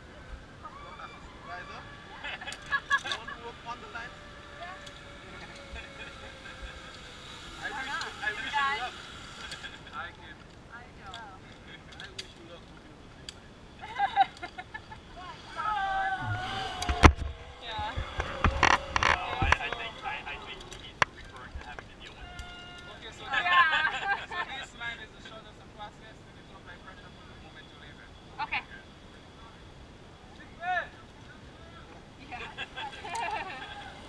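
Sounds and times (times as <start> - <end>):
people talking: 15.2 - 22.3.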